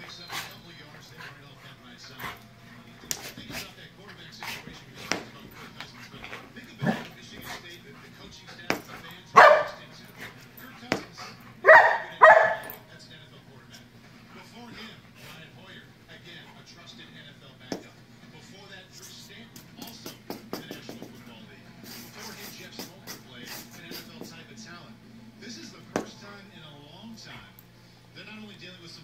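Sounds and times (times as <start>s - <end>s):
dog barking: 9.4s - 9.8s, 11.6s - 12.8s.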